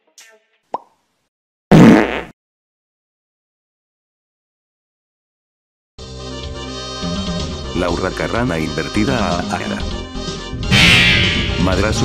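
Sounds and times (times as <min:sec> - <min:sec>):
comedy fart sound effect: 0:01.7 - 0:02.4.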